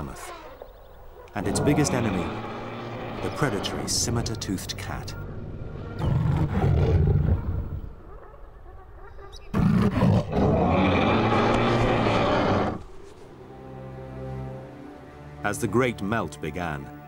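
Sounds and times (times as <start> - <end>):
big cat roars: 1.3 - 4.8, 6.0 - 7.9, 9.5 - 12.9.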